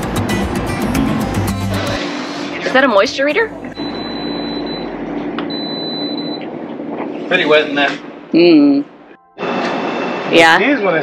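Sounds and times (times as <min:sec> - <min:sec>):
moisture meter high beeps: 0:03.7 - 0:06.4.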